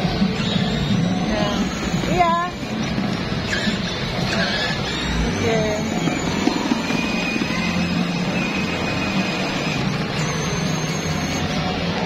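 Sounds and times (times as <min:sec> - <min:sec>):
toy motorcycle driving: 0:00.0 - 0:12.0.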